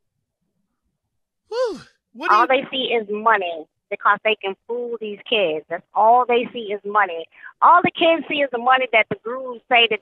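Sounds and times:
person sighing: 0:01.5 - 0:02.5.

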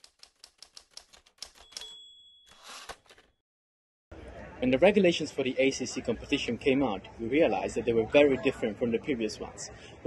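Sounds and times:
typewriter key strikes: 0:00.0 - 0:03.2
typewriter bell ringing: 0:01.5 - 0:03.4.

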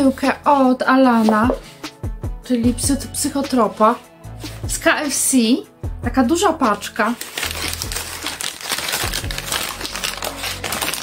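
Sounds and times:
paper bag rustling: 0:06.8 - 0:11.0.

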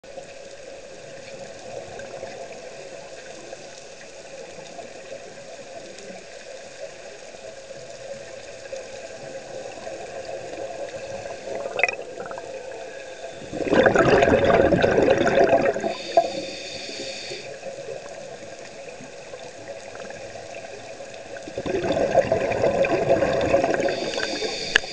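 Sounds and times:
underwater sea sound: 0:00.1 - 0:24.9
scuba regulator bubbles rushing: 0:09.6 - 0:16.4, 0:17.9 - 0:24.9
faint hiss: 0:15.6 - 0:21.5, 0:23.2 - 0:24.9.

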